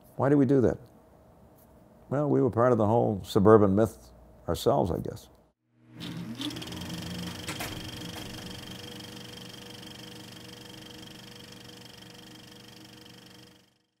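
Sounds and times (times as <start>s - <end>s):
hum of held tones: 5.9s - 13.9s.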